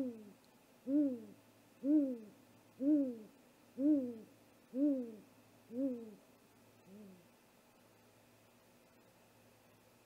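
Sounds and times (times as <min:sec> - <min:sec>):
owl deep hoots: 0:00.0 - 0:06.2, 0:06.9 - 0:07.3.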